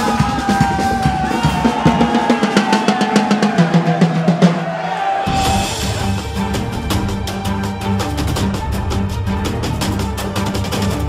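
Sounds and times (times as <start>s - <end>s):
snare drum: 0.0s - 11.0s
bass drum: 5.3s - 11.0s.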